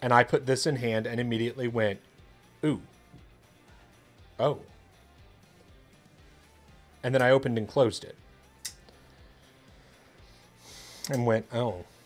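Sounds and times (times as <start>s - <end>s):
faint background music: 0.0s - 12.0s
sharp intake of breath: 9.0s - 11.1s.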